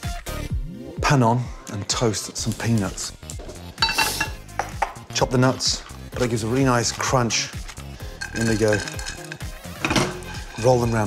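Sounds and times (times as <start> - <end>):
peanuts rattling in a metal pan: 6.2 - 11.0.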